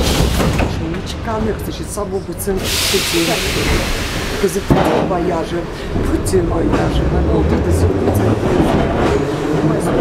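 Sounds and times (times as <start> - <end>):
metro train rumbling: 0.0 - 10.0.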